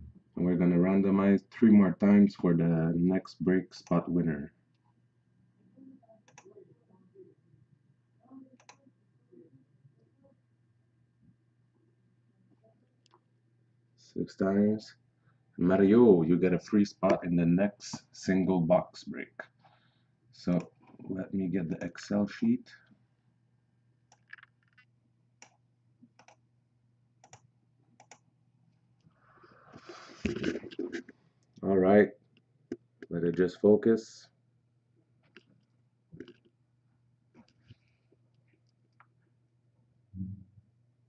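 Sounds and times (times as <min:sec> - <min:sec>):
faint mouse clicks: 0:08.6 - 0:08.8.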